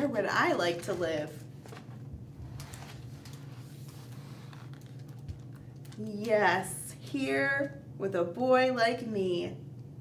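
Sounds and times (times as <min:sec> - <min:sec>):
low steady hum: 0:00.0 - 0:10.0
hands handling book pages: 0:00.7 - 0:06.0.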